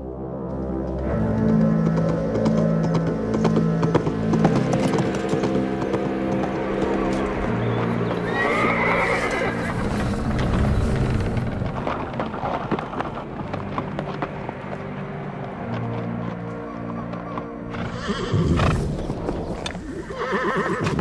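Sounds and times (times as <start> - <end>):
background music: 0.0 - 21.0
horse hooves clip-clopping: 0.6 - 21.0
horse whinnying: 7.6 - 9.8, 17.8 - 21.0.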